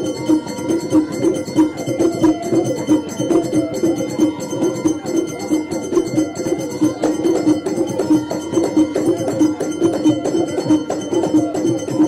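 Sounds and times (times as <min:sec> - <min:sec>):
drums and jingles: 0:00.0 - 0:12.0.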